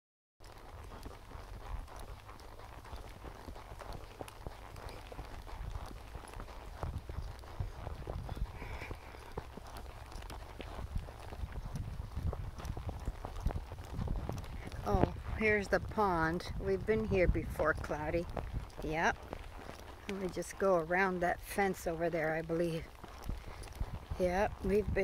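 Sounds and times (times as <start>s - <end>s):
horse hoofbeats on dirt: 0.4s - 25.0s
wind rumbling on microphone: 0.4s - 25.0s.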